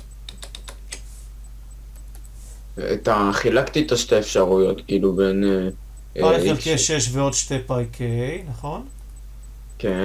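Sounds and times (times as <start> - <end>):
keyboard keys clicking: 0.0 - 1.0
steady low hum: 0.0 - 10.0.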